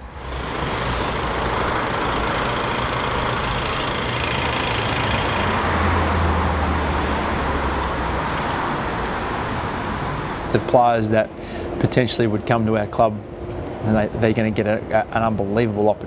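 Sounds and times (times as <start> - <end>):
passing road vehicles: 0.0 - 10.8
truck engine: 0.0 - 10.9.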